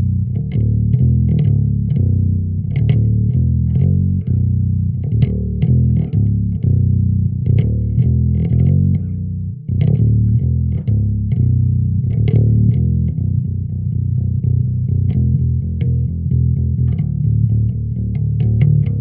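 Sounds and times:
plucked bass guitar notes: 0:00.0 - 0:19.0.

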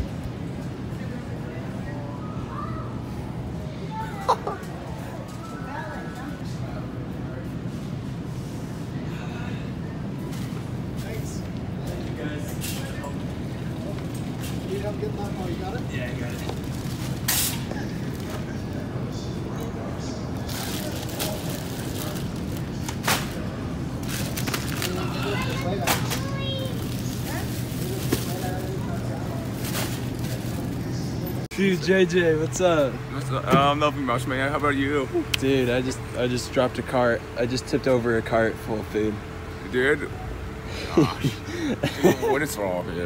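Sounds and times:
distant indistinct voices: 0:00.0 - 0:43.0
faint shoppers chatter: 0:00.0 - 0:43.0.

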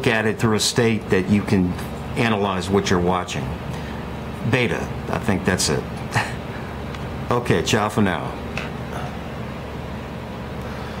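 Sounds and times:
background hum and hiss: 0:00.0 - 0:11.0.

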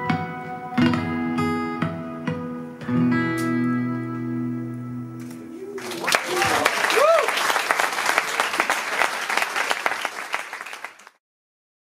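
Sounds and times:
listener shouting: 0:05.6 - 0:07.3
audience applauding: 0:05.7 - 0:11.2.

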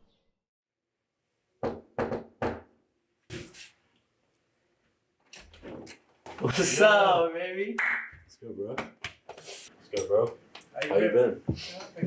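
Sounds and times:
knuckles knocking on door: 0:01.6 - 0:02.6.

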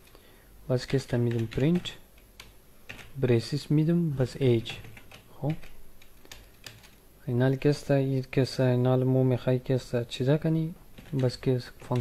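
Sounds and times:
computer keyboard typing: 0:00.9 - 0:03.5, 0:04.4 - 0:07.0, 0:10.9 - 0:12.0.

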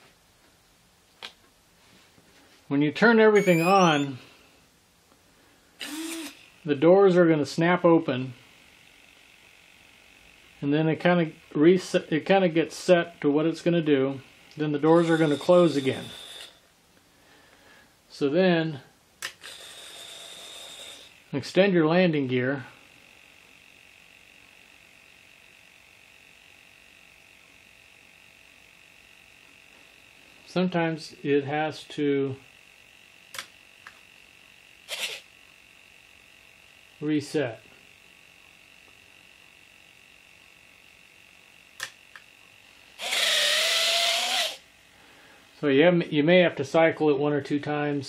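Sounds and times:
servos whining: 0:03.4 - 0:04.4, 0:05.8 - 0:16.6, 0:19.2 - 0:22.1, 0:31.6 - 0:44.7
click: 0:33.3 - 0:34.0, 0:41.8 - 0:42.3.

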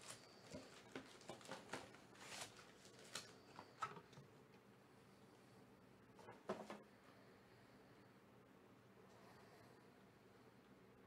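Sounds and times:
rustle of card packs: 0:00.0 - 0:03.8.

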